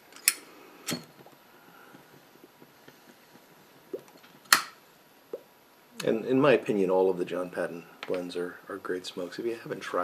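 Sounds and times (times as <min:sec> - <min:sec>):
pipe puffs and lip pops: 0:00.9 - 0:05.6.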